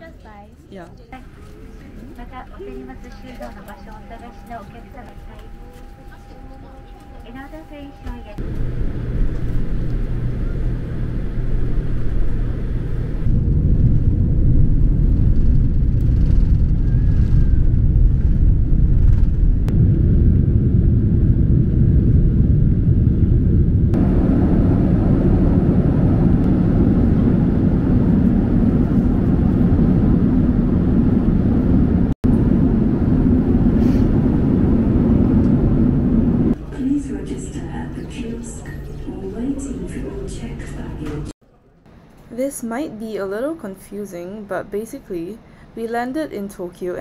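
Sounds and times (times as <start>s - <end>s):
jet engine cabin rumble: 1.0s - 41.4s.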